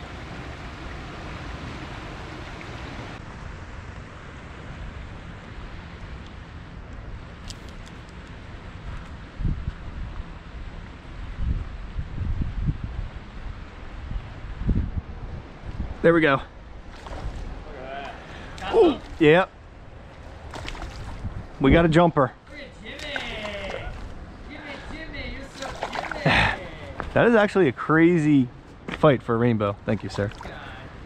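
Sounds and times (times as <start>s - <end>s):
steady outdoor hiss: 0.0s - 31.0s
wind buffeting microphone: 8.4s - 22.2s.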